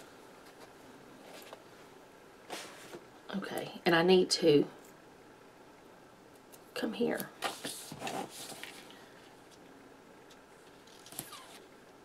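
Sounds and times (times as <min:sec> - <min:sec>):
sharp rustle and squeak: 0:10.8 - 0:11.7.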